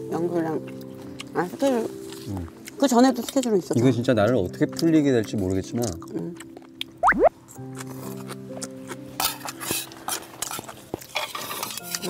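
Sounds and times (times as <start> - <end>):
utensils clinking on metal bowls: 9.2 - 12.0.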